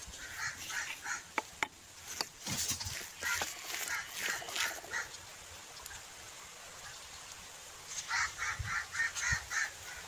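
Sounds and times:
peafowl calling: 0:00.1 - 0:01.4, 0:02.9 - 0:05.2, 0:07.9 - 0:10.0.

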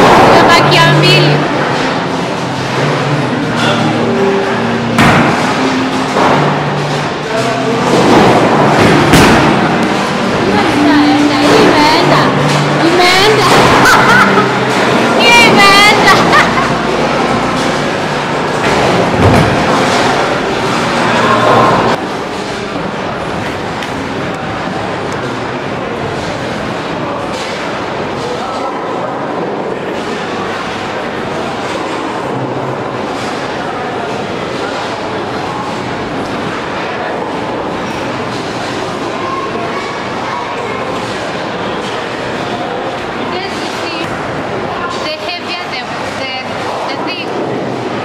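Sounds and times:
hubbub of voices: 0:00.0 - 0:48.0
bowling balls rolling: 0:04.7 - 0:27.8.

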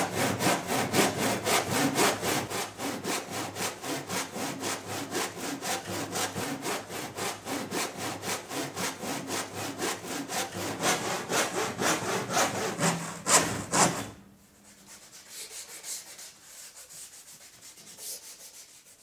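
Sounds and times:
hand saw cutting wood: 0:00.0 - 0:14.2.

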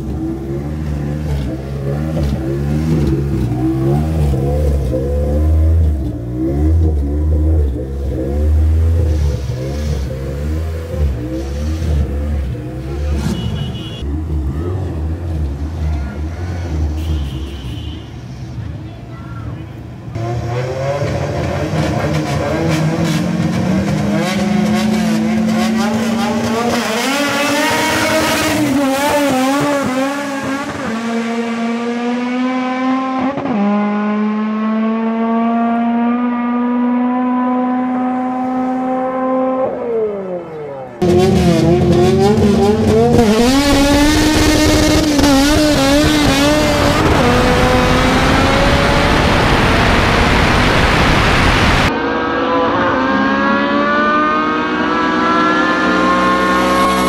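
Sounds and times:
cars accelerating away: 0:00.0 - 0:13.4, 0:20.1 - 0:57.0.

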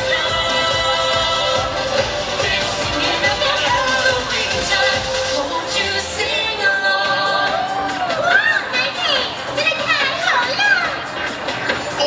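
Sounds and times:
crowd voices: 0:00.0 - 0:12.0
parade music with singing: 0:00.0 - 0:12.0.

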